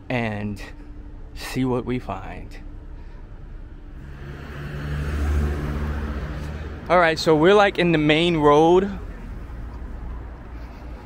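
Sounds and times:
vehicle driving past: 0:03.4 - 0:11.0.

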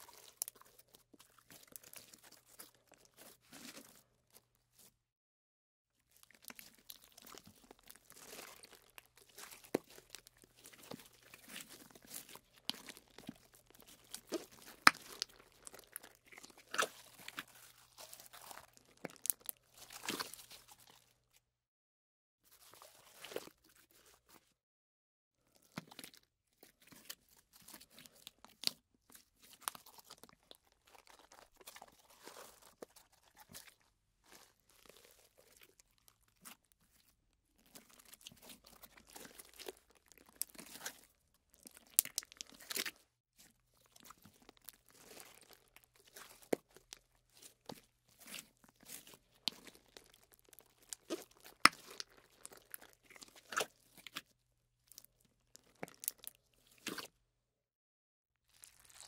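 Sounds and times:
slime squishing with wet clicks: 0:00.0 - 0:04.5, 0:06.1 - 0:21.1, 0:25.5 - 0:57.1, 0:58.5 - 0:59.0.

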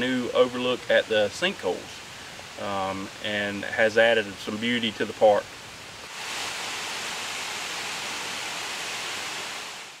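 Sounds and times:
waterfall rushing: 0:05.8 - 0:10.0.

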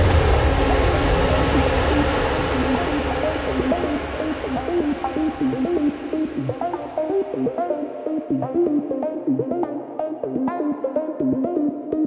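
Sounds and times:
wash of noise: 0:00.0 - 0:08.2
low sustained synth: 0:00.0 - 0:09.0
gliding pitched notes: 0:00.0 - 0:12.0.

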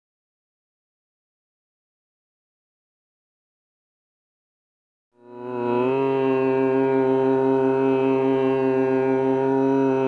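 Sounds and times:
sustained drone theme music: 0:05.2 - 0:10.0.

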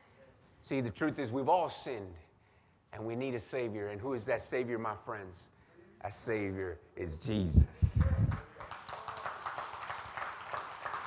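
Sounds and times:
man's voice: 0:06.1 - 0:08.6
congregation clapping: 0:07.8 - 0:11.0.

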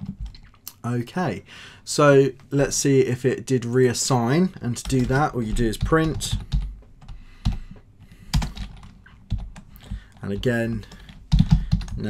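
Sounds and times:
computer keyboard keystrokes: 0:08.3 - 0:12.0.

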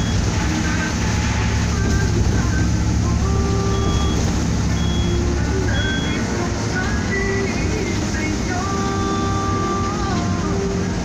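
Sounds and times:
coach engine and tyres rumbling: 0:00.0 - 0:11.0
faint short tones: 0:03.4 - 0:06.3.

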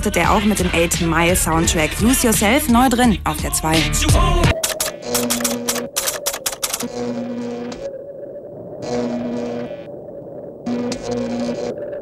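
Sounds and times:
typewriter keystroke clicks: 0:04.6 - 0:06.9
steady low tone: 0:06.9 - 0:12.0.

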